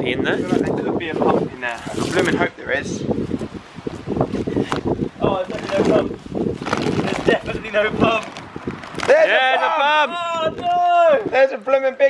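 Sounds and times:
wind on microphone: 0.0s - 9.5s, 10.1s - 11.4s
plastic crinkling: 4.6s - 9.2s.

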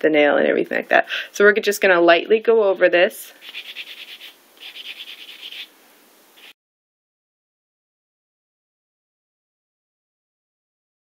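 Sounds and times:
nail buffer scratching fingernail: 3.4s - 5.7s.

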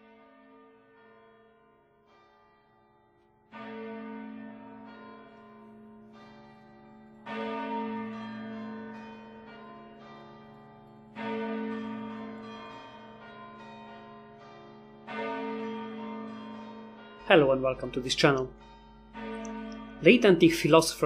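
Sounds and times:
bells ringing: 3.5s - 21.0s.

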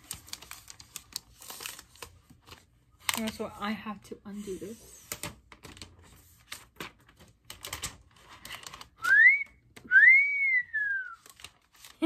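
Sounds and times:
plastic wrap clicks and rustles: 0.0s - 3.5s, 5.1s - 9.9s, 10.9s - 12.0s.

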